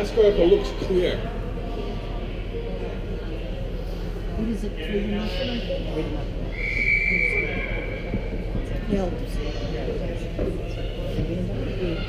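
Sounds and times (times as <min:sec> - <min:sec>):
spectators chatting: 0:00.0 - 0:12.0.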